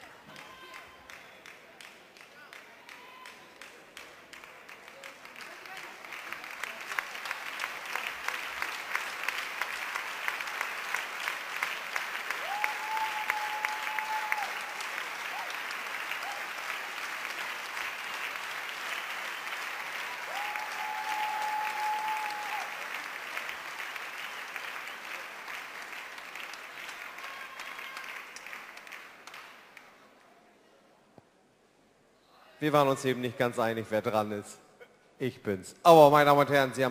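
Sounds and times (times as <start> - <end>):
large audience applauding: 0.0 - 29.9.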